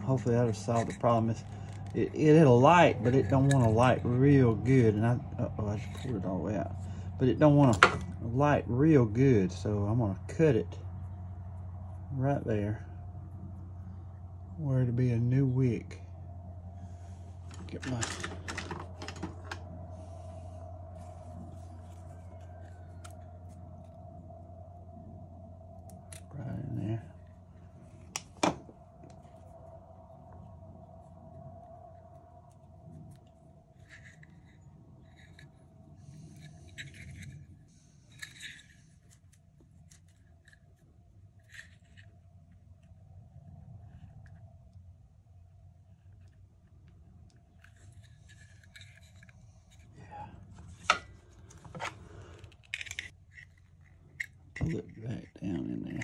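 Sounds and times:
clicks and rustles of metal: 0.0 - 5.0, 17.4 - 19.8, 32.5 - 43.0, 46.1 - 56.0
steady low hum: 0.0 - 56.0.

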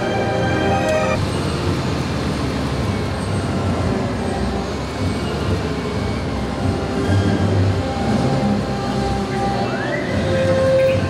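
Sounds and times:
low engine rumble: 0.0 - 11.0.

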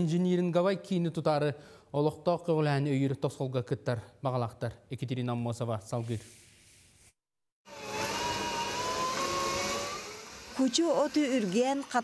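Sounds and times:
food processor motor whine: 7.6 - 12.0
woman speaking: 10.6 - 12.0.

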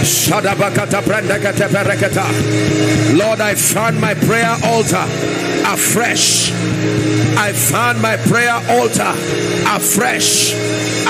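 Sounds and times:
music with long held chords: 0.0 - 11.0.

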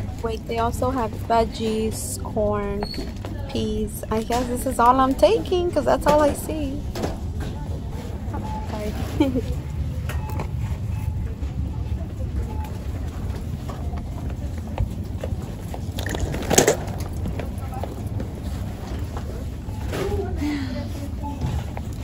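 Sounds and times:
faint voices: 0.0 - 22.0.

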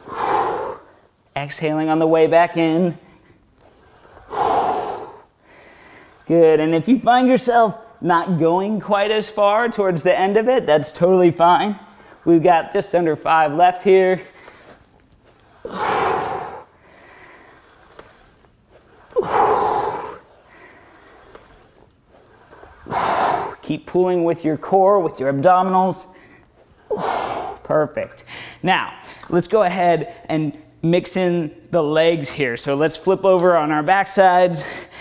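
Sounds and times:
man exhaling forcefully: 0.0 - 0.9, 4.3 - 5.2, 15.6 - 16.7, 19.2 - 20.2, 22.9 - 23.6
man exhaling hard: 15.6 - 16.7.

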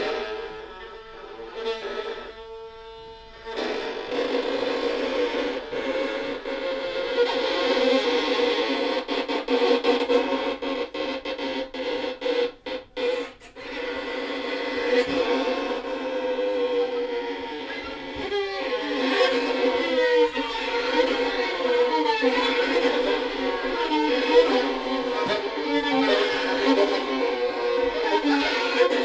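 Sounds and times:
violins bowed sustained: 11.8 - 29.0.

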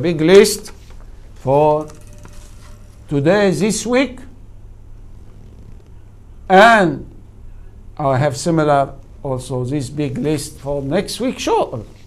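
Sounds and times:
man speaking: 0.0 - 0.8, 1.4 - 2.0, 3.1 - 4.4, 8.0 - 12.0.

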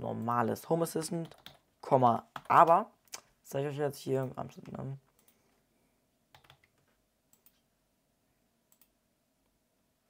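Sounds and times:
computer mouse and keyboard clicks: 6.3 - 7.6.

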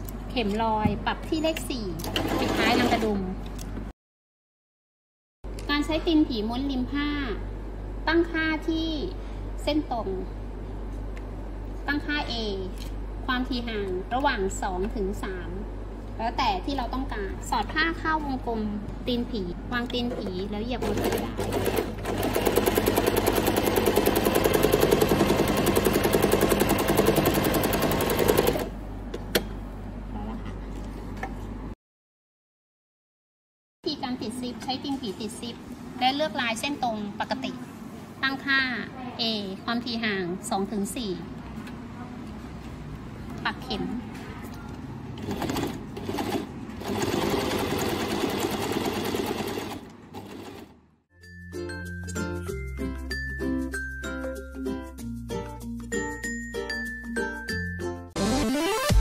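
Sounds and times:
sewing machine running: 2.1 - 3.1, 20.8 - 28.7, 45.2 - 50.8.

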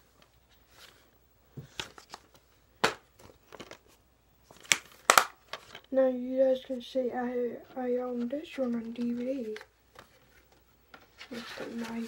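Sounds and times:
plastic cases rustling and clacking: 3.2 - 3.9.

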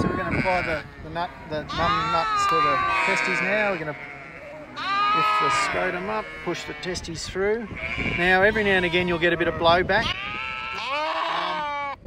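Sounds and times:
lamb bleating: 0.0 - 12.0.

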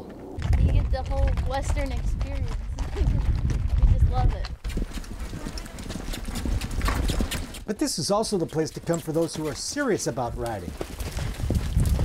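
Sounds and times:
horse hoofbeats on sand: 0.0 - 12.0.

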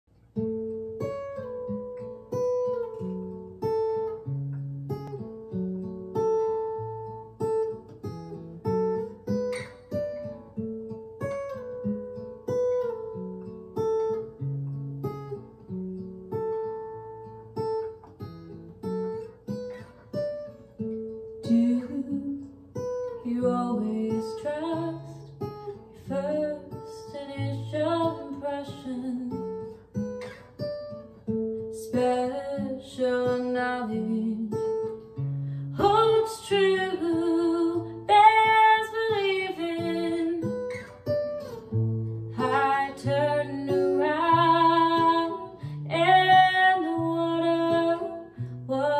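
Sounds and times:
acoustic guitar picking: 0.2 - 48.9
woman singing: 21.3 - 29.8, 31.6 - 35.0, 35.7 - 40.8, 42.3 - 48.9.

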